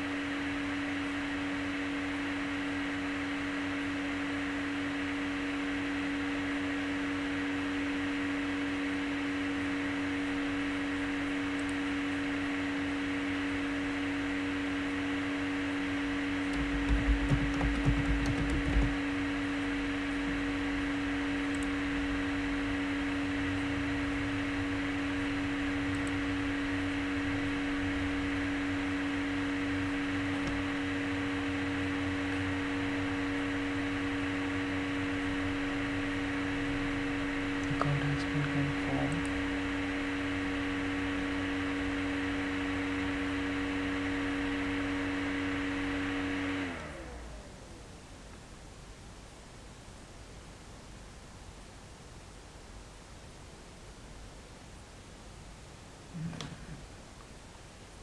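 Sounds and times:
electrical hum and hiss: 0.0 - 58.0
constant low tone: 16.5 - 41.4.

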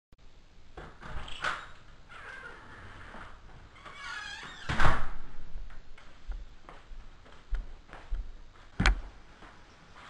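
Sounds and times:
door hinges squeaking: 1.0 - 5.1
door closing with thud: 4.0 - 5.4.

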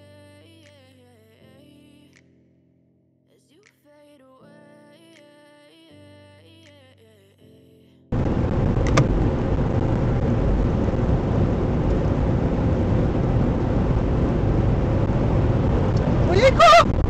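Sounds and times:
car road and engine noise: 8.2 - 17.0
sharp click: 8.8 - 9.1.

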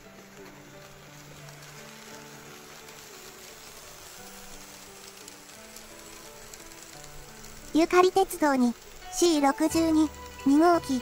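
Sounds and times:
model trains rolling on track: 0.0 - 11.0
soft background music: 0.0 - 11.0.

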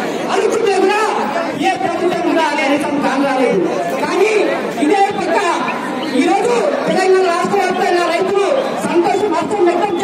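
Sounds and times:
crowd chatter: 0.0 - 10.0
men talking over one another: 0.0 - 10.0.

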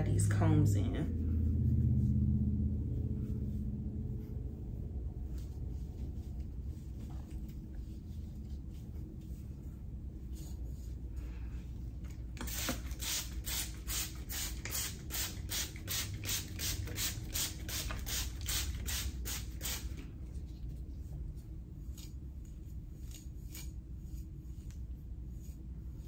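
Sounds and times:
comb scratching through wig hair: 0.1 - 11.2, 16.2 - 26.0.

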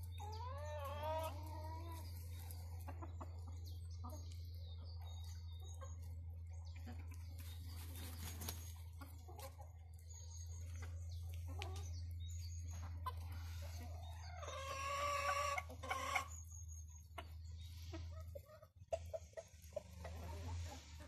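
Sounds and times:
chickens clucking: 0.0 - 21.0.

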